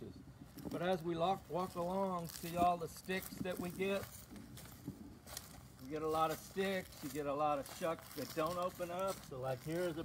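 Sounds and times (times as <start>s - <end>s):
footsteps on sticks and leaves: 0.4s - 10.0s.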